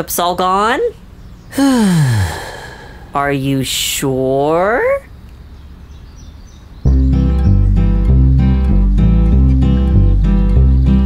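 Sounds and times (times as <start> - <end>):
cartoon background music: 6.9 - 11.0.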